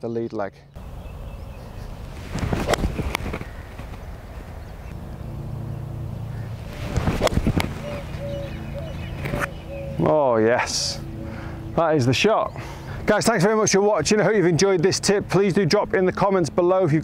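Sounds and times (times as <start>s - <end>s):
outdoor background noise: 0.0s - 17.0s
low steady hum: 0.6s - 17.0s.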